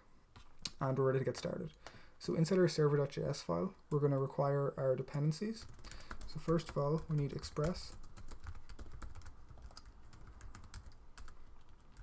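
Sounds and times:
typing on computer keyboard: 0:05.6 - 0:12.0.

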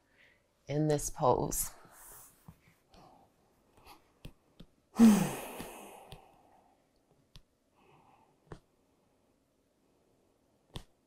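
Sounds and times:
woman sighing exhale: 0:05.0 - 0:06.2.

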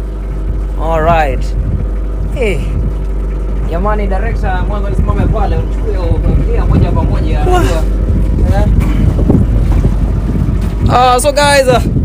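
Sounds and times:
motorboat engine rumbling: 0:00.0 - 0:12.0.

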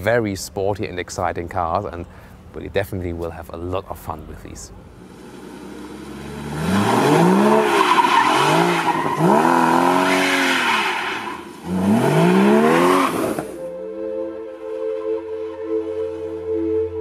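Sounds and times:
car engine revving hard: 0:05.1 - 0:13.6.

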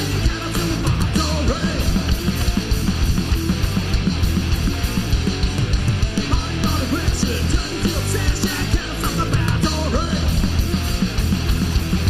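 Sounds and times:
bass guitar: 0:00.0 - 0:12.0
distorted electric guitars: 0:00.0 - 0:12.0
drum kit beat: 0:00.0 - 0:12.0.

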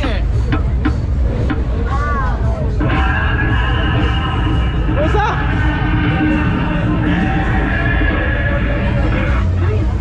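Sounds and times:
funfair music: 0:00.0 - 0:10.0
low rumble: 0:00.2 - 0:10.0
steady electronic chord: 0:02.6 - 0:10.0.

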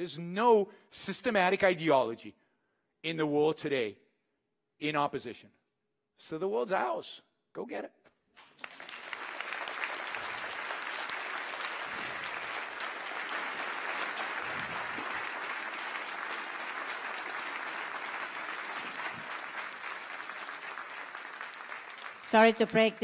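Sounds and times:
large audience applauding: 0:08.4 - 0:23.0.

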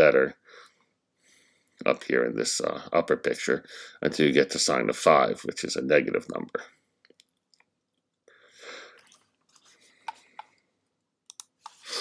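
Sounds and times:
computer mouse clicks: 0:11.3 - 0:11.8.

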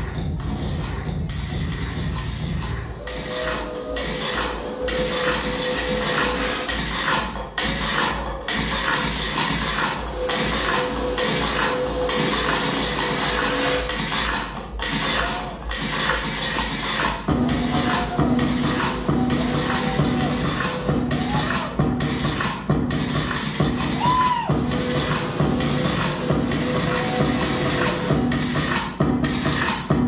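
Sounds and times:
deep bassline: 0:00.0 - 0:30.0
kick-drum beat: 0:00.0 - 0:30.0.

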